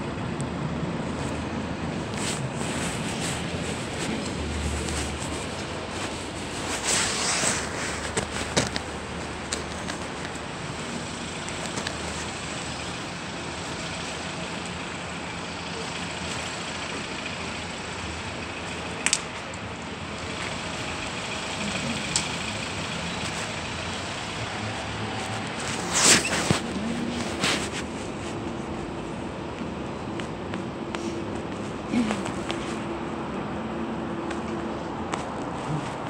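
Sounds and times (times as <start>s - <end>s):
city street traffic: 0.0s - 36.0s.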